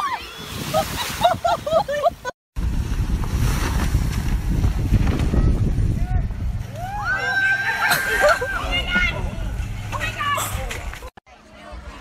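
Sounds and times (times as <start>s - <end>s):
wind rumbling on microphone: 0.4s - 11.1s.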